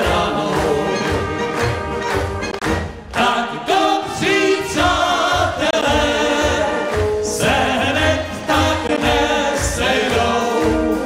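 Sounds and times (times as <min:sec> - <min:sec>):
brass band playing: 0:00.0 - 0:11.0
voices singing with vibrato: 0:00.0 - 0:11.0.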